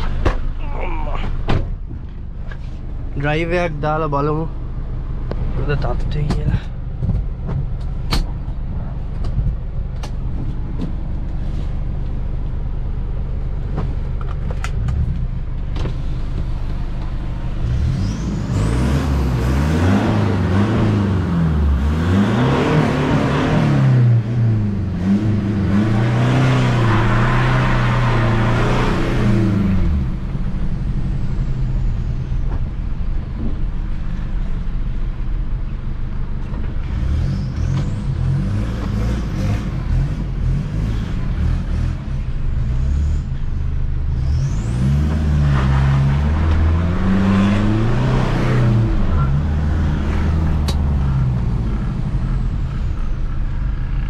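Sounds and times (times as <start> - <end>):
pickup engine revving: 16.0 - 32.4, 44.0 - 54.0.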